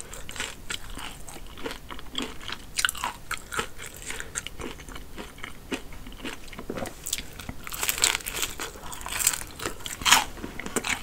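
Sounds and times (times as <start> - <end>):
breading crunching: 0.0 - 11.0
chewing crispy fried chicken: 0.0 - 11.0.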